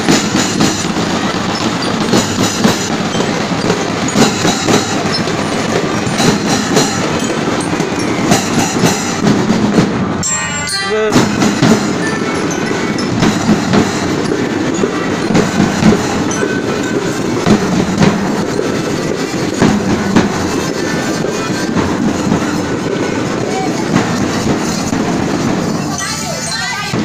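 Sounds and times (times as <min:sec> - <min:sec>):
bass drums beating: 0:00.0 - 0:10.2, 0:11.0 - 0:25.9
snare drums beating: 0:00.0 - 0:10.2, 0:11.0 - 0:25.9.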